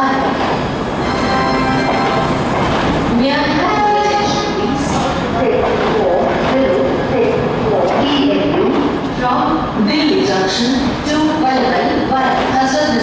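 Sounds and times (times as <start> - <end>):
train wheels clattering on track: 0.0 - 1.0, 1.8 - 9.2
train rumble: 0.0 - 13.0.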